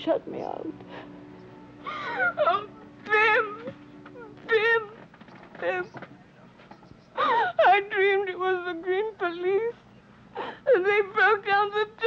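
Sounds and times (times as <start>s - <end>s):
girl whimpering cries: 1.8s - 5.0s, 7.2s - 7.9s.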